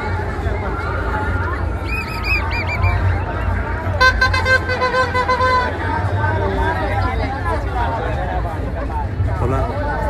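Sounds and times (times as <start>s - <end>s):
crowd chatter: 0.0s - 10.0s
whistle trill: 1.8s - 3.5s.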